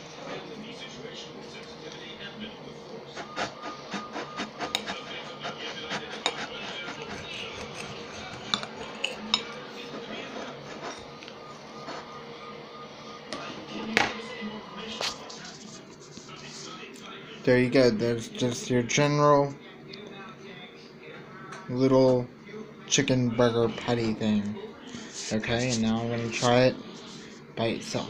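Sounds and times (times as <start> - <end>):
knife scraping on plate: 3.2 - 11.1.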